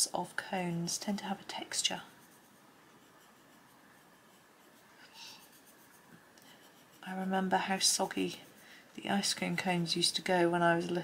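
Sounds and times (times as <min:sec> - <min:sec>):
pencil scratching on paper: 0:00.6 - 0:10.4.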